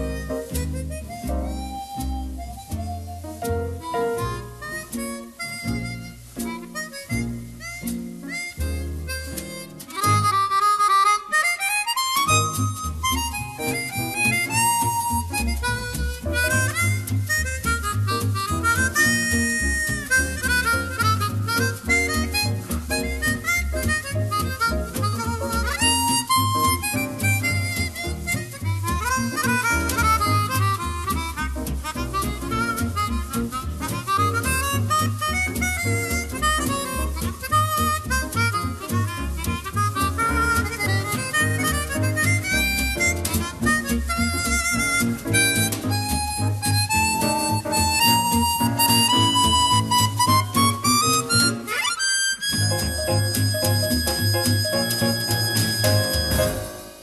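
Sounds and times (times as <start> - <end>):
drums: 0.0 - 51.7, 52.6 - 57.0
chromatic harmonica melody: 0.0 - 57.0
piano: 0.0 - 57.0
walking double bass: 0.0 - 57.0.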